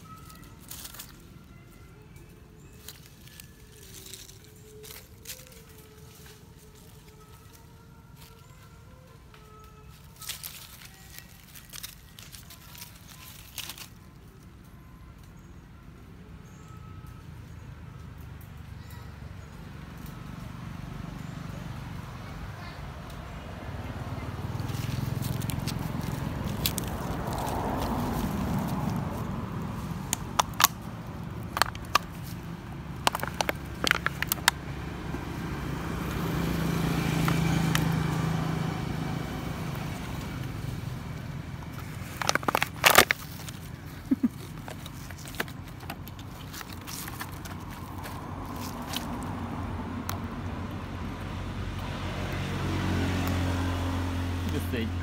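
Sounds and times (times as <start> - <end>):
plastic water bottle crackling: 24.6 - 34.6, 41.6 - 50.2.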